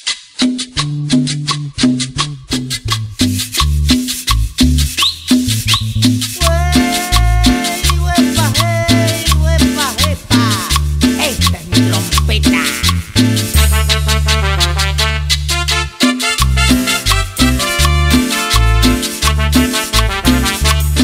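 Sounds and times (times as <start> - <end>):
cumbia band playing: 0.0 - 21.0
steady percussion beat: 0.0 - 21.0
lead melody with bending notes: 0.4 - 21.0
bass line: 0.6 - 21.0.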